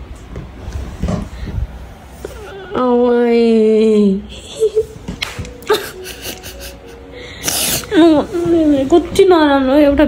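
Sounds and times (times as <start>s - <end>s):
woman sobbing: 3.7s - 8.3s
woman crying: 3.8s - 8.3s.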